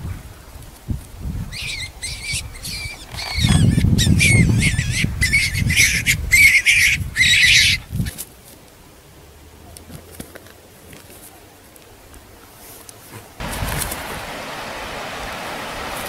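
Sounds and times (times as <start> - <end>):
wind buffeting microphone: 0.0 - 8.2, 13.4 - 16.0
bird short high calls: 1.5 - 7.8.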